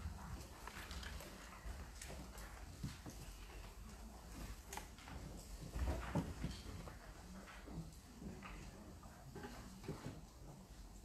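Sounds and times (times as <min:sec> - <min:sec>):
footsteps on hard floor: 0:04.4 - 0:07.9.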